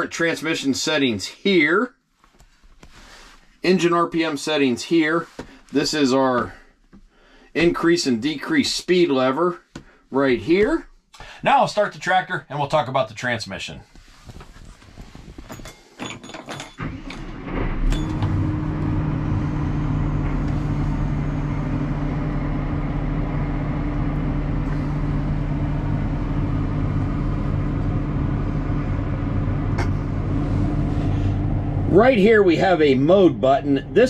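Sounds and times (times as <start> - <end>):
diesel engine starting and idling: 16.8 - 34.0.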